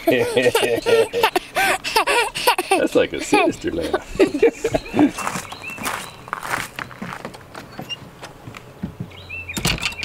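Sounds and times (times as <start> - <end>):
glass door rattling: 7.3 - 10.0
door knocks and latch clicks: 7.8 - 10.0.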